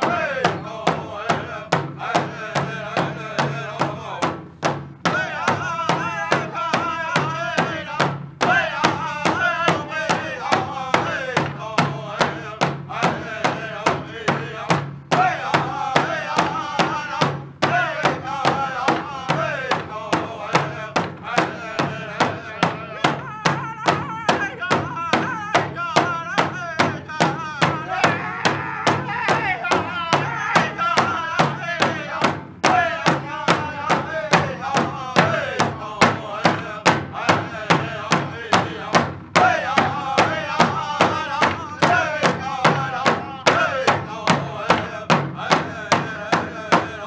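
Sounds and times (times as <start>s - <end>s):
group of voices singing: 0.0s - 47.0s
large hand drum beating: 0.0s - 47.0s.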